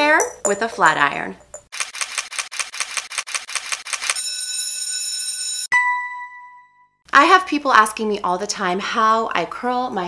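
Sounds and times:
rapid camera shutter clicks: 1.7 - 4.2
high ringing tone: 4.2 - 7.0.

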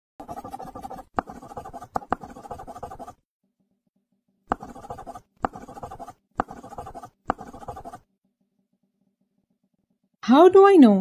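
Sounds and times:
pen tapping: 0.2 - 3.1, 4.5 - 8.0
pen scratching on paper: 0.2 - 3.2, 4.5 - 8.2.

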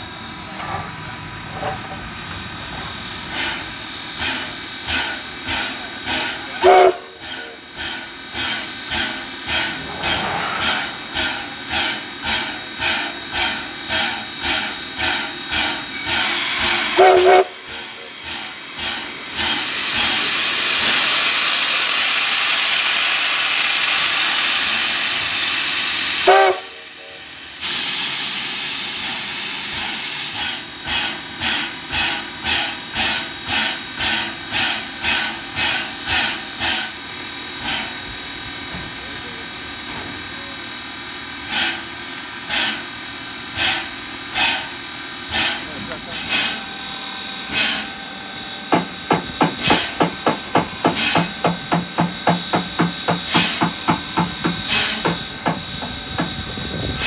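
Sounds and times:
loud steam hiss: 0.0 - 57.0
steam locomotive rhythmic pulsing: 0.0 - 57.0
steam whistle toots: 6.6 - 7.5, 16.2 - 17.9, 26.1 - 28.6.

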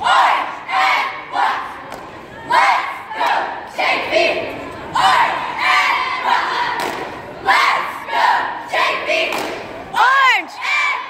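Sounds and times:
cheerleaders shouting in unison: 0.0 - 11.0.

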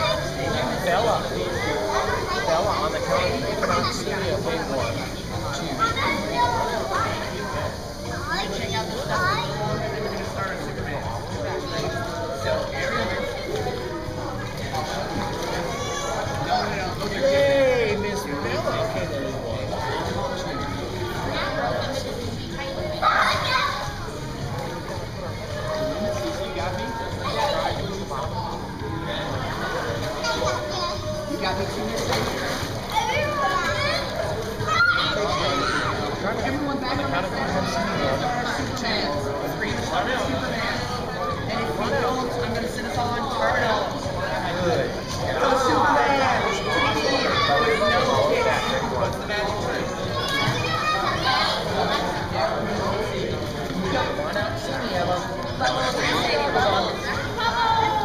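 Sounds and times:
children's chatter echoing: 0.0 - 58.0.

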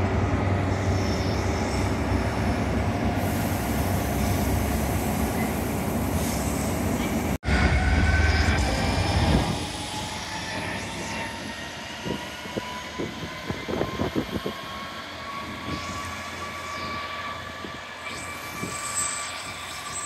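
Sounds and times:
diesel locomotive engine rumble: 0.0 - 18.7.

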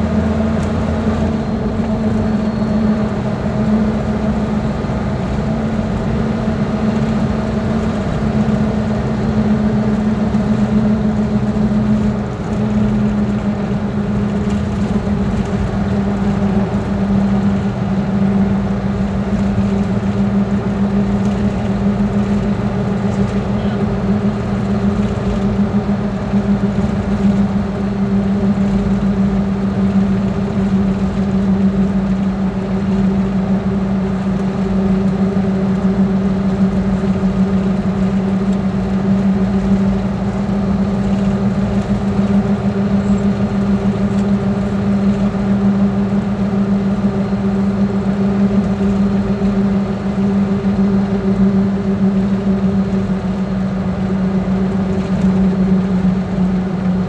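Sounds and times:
vehicle engine and tyre drone: 0.0 - 57.0.

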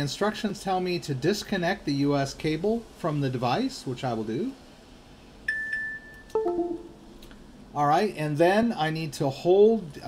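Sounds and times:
device disconnect chime: 5.5 - 7.0.

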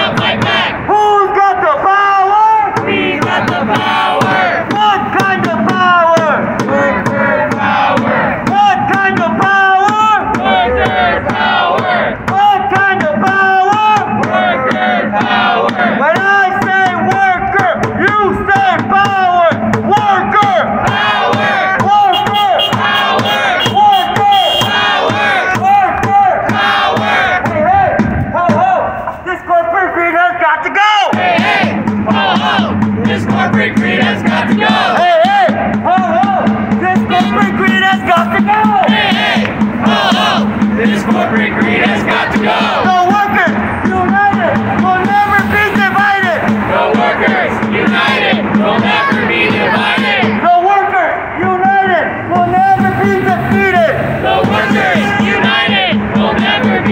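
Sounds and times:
crowd chanting slogans: 0.0 - 29.0, 31.0 - 56.9
voice through a megaphone: 0.0 - 56.9.

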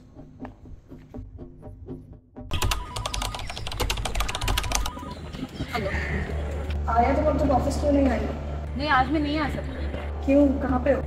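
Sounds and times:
keyboard typing clicks: 2.5 - 5.0.

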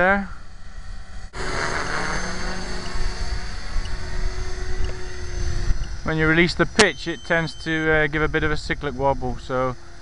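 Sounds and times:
rc helicopter motor whine: 0.0 - 10.0
broad rushing noise: 1.3 - 6.8.

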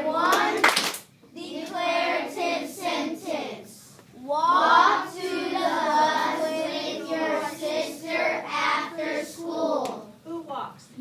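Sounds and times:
children singing in unison: 4.3 - 9.8.

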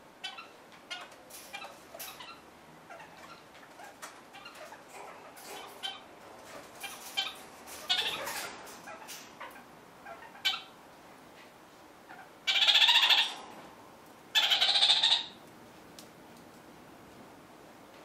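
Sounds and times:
parrot chattering calls: 0.2 - 10.8, 12.1 - 13.4, 14.3 - 15.4.

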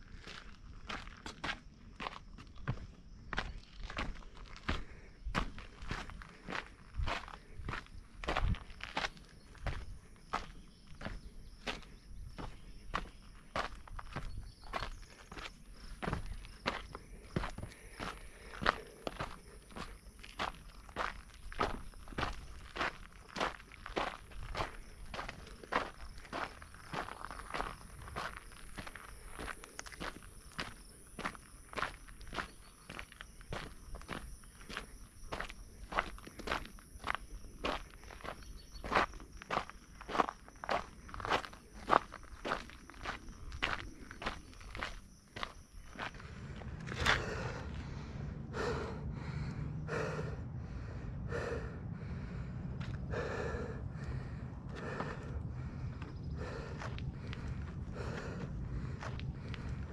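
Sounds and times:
footsteps on dirt trail: 0.0 - 50.4, 51.3 - 59.9.

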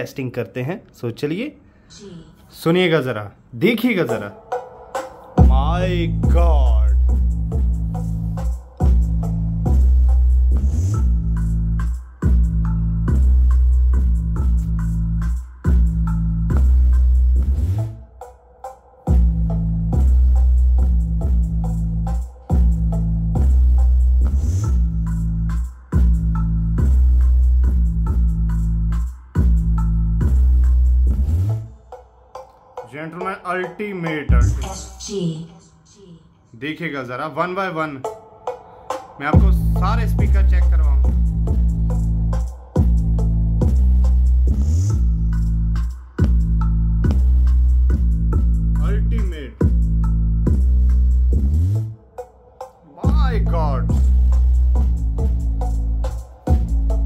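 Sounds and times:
electronic dance music with deep bass: 4.2 - 18.1, 19.0 - 32.1, 32.7 - 35.4, 38.4 - 57.0.

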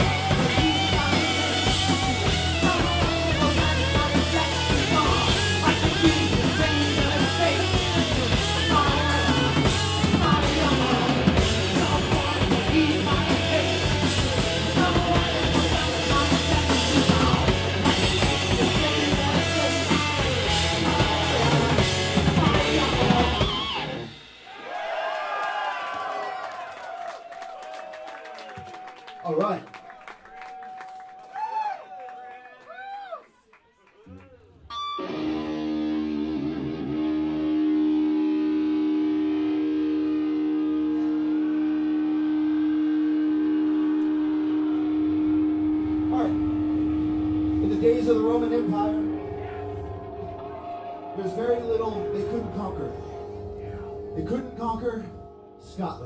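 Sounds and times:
heavy metal band playing: 0.0 - 25.1, 34.7 - 56.0
crowd noise: 0.0 - 55.6
distorted electric guitar note: 34.7 - 56.0.

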